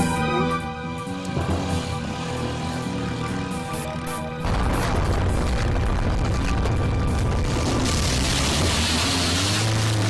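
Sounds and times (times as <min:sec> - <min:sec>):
car engine pulling away: 0:00.8 - 0:10.0.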